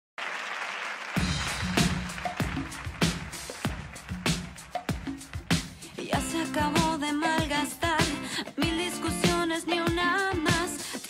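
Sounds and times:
audience applauding: 0:00.2 - 0:05.8
pop song with bass and drums: 0:01.5 - 0:11.0.

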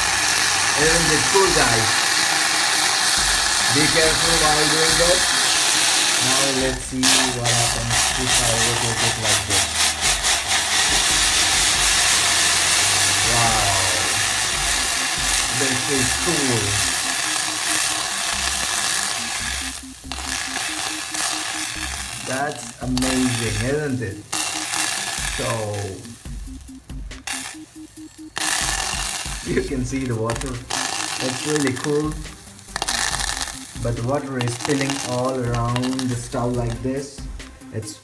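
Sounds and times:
water sizzling in hot saucepan: 0:00.0 - 0:37.2.

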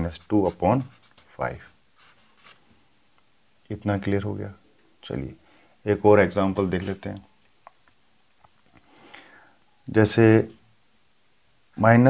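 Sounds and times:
pen scratching on paper: 0:00.0 - 0:02.6.

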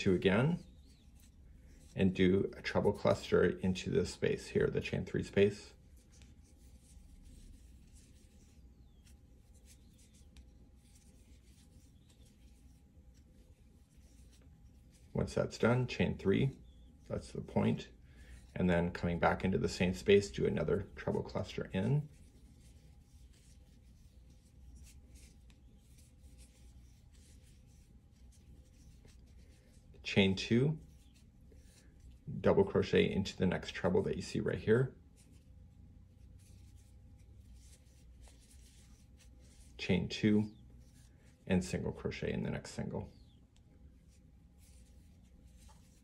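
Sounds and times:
faint steady hum: 0:00.0 - 0:46.0
crochet hook scratching through yarn: 0:00.1 - 0:17.8, 0:18.6 - 0:41.1, 0:44.0 - 0:46.0
crochet hook pulling yarn: 0:44.1 - 0:46.0.

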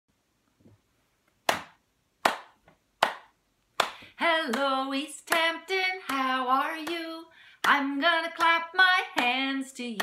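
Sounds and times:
sharp hand claps: 0:01.5 - 0:04.7.

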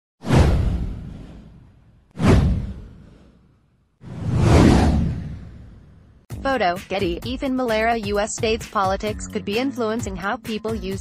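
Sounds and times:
deep boom: 0:00.2 - 0:03.1
whoosh sound effect: 0:00.2 - 0:06.1.

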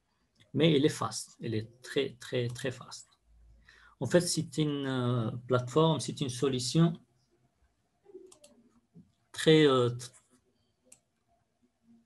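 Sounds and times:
faint mouse clicks: 0:08.1 - 0:08.7, 0:10.9 - 0:11.1.

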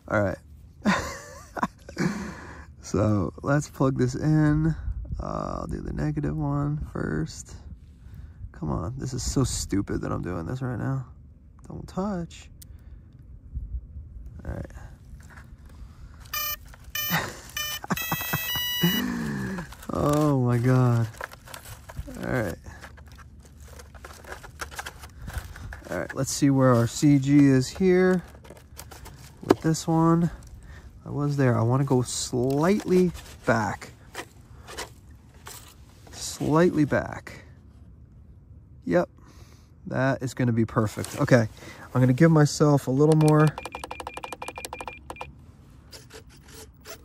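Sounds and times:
hands handling plastic model: 0:16.2 - 0:30.6, 0:31.8 - 0:36.9
speed controller beeping tones: 0:16.3 - 0:19.1, 0:43.4 - 0:45.3.

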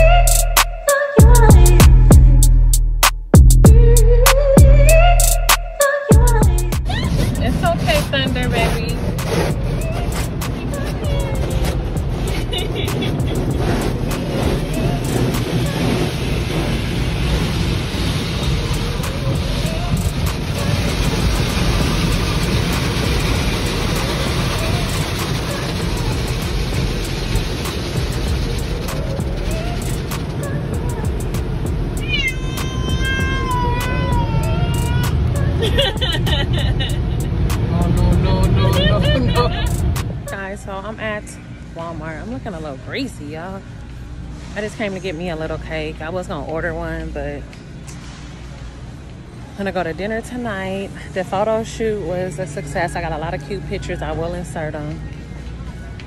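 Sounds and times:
water spray in car wash: 0:06.7 - 0:40.1.

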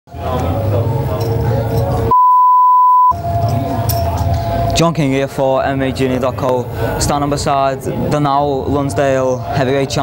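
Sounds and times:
electronic beep: 0:02.1 - 0:03.2.

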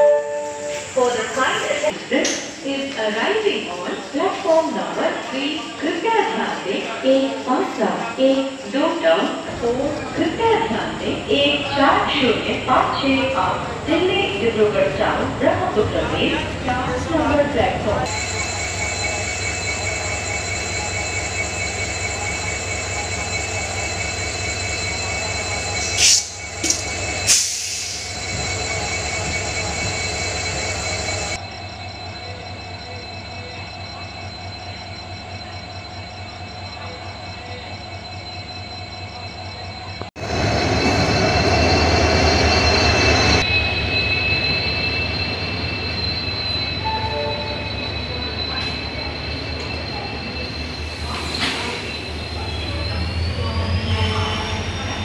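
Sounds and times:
low train rumble: 0:00.0 - 0:55.0
train wheels squealing: 0:03.8 - 0:55.0.

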